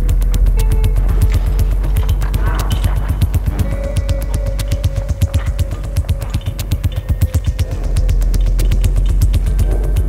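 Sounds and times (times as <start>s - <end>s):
sharp electronic clicks: 0.0s - 9.6s
deep steady bass: 0.0s - 10.0s
minimal glitch electronic music: 0.0s - 10.0s
short bass pulses: 0.0s - 10.0s.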